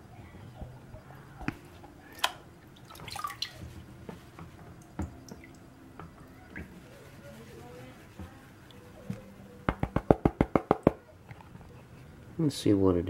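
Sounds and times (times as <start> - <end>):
water dripping and splashing in pan: 2.2 - 3.6.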